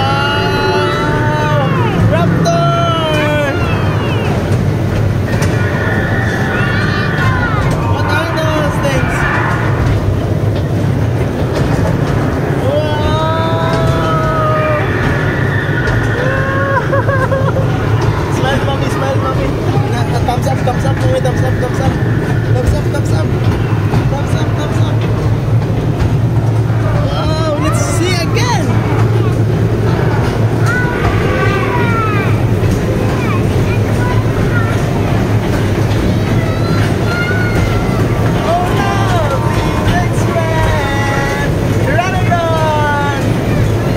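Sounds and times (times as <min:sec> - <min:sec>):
ride car hum and rumble: 0:00.0 - 0:43.9
voices calling out: 0:00.0 - 0:43.9.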